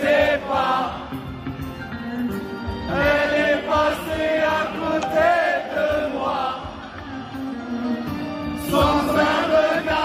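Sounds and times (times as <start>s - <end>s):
crowd singing along: 0.0s - 10.0s
live band music: 0.0s - 10.0s.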